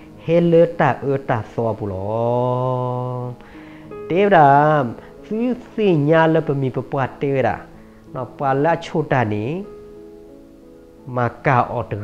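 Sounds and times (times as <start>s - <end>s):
man preaching: 0.2s - 3.4s, 4.1s - 9.7s, 11.1s - 12.0s.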